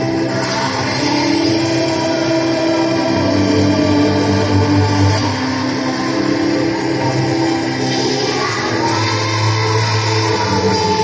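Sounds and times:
choir singing long held notes: 0.0s - 11.0s.

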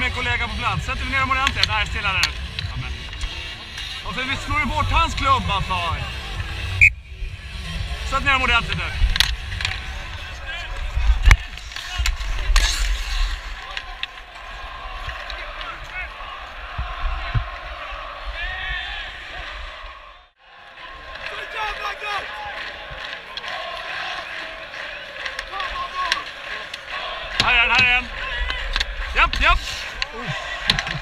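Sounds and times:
arena crowd noise: 0.0s - 31.0s
skates scraping on ice: 7.4s - 16.6s, 20.8s - 31.0s
players shouting: 7.8s - 31.0s.

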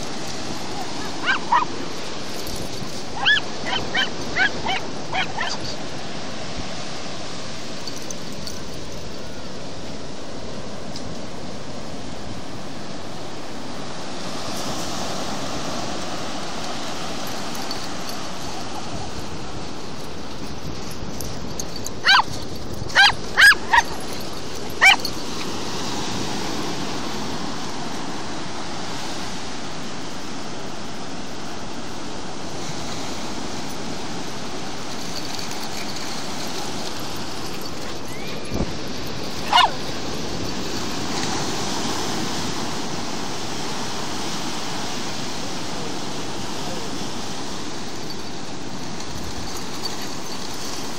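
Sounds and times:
surf washing: 0.0s - 50.9s
dog yelping: 0.8s - 1.7s, 3.2s - 5.8s, 22.0s - 24.0s, 24.8s - 25.1s, 39.4s - 39.9s.

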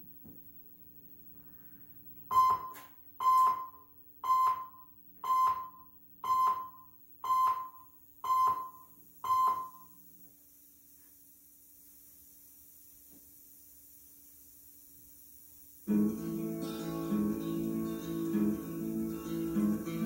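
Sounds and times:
electronic countdown beeps: 2.3s - 10.0s.

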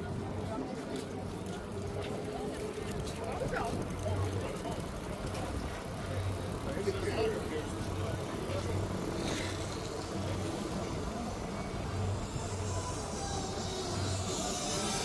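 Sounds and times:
distant indistinct voices: 0.0s - 15.0s.

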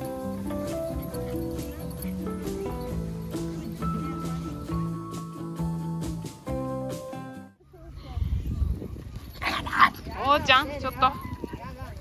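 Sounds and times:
background music with held notes: 0.0s - 7.6s.

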